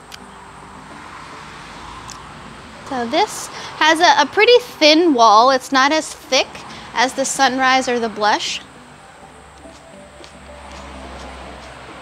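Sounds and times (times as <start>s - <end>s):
road vehicle passing: 0.0s - 12.0s.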